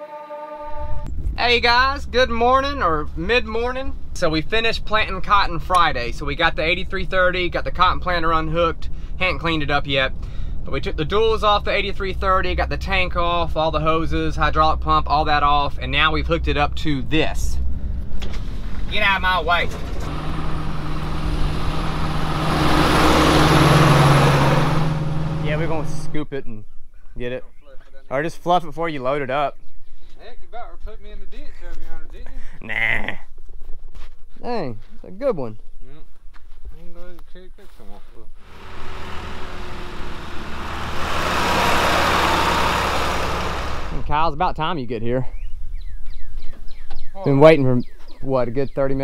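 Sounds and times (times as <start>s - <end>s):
tractor diesel engine running: 17.7s - 26.2s, 38.4s - 44.2s.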